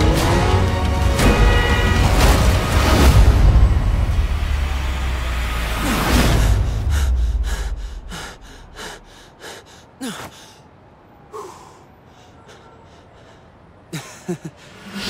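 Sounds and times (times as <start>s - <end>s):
person panting: 6.2s - 15.0s
whooshes: 14.7s - 15.0s.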